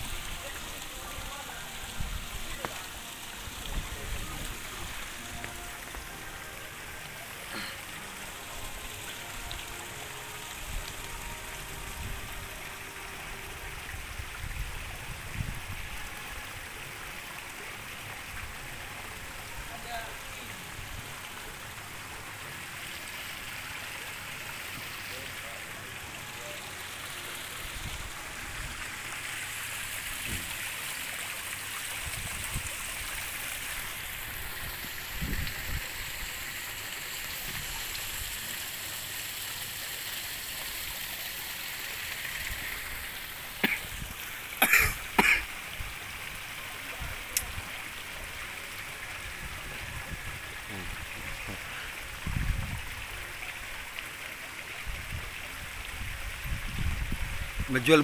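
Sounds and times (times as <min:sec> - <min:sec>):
outdoor background hiss: 0:00.0 - 0:58.0.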